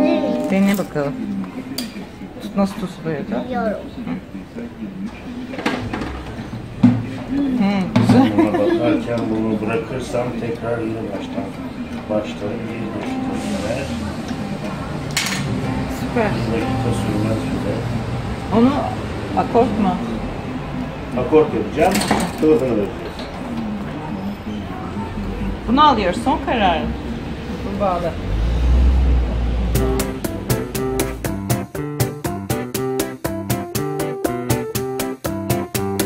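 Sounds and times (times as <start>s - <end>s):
shop room noise: 0.0s - 31.5s.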